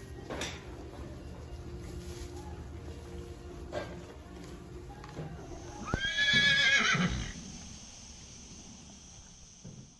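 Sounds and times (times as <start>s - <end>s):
horse whinnying: 5.8s - 7.4s.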